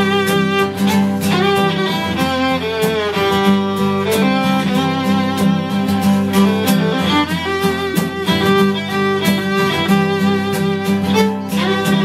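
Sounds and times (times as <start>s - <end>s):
bowed string melody: 0.0s - 12.0s
low accompaniment: 0.0s - 12.0s.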